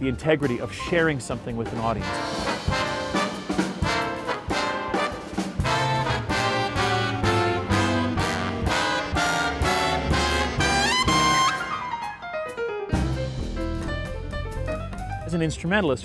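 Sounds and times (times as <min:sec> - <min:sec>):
jazz big band: 0:00.0 - 0:15.8
brass section: 0:02.0 - 0:12.1.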